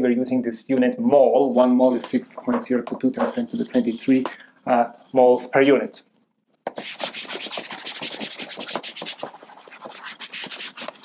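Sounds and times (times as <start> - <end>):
eraser rubbing on whiteboard: 6.7 - 11.0.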